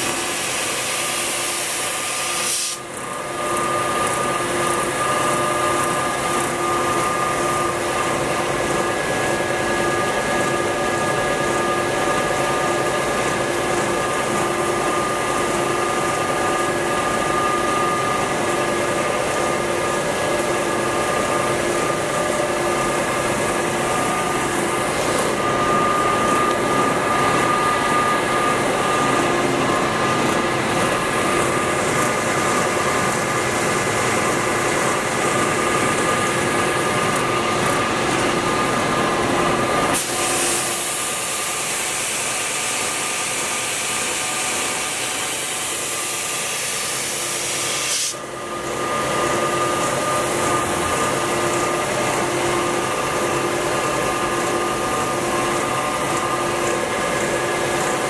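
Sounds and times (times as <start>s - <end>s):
belt sander running: 13.9s - 47.2s.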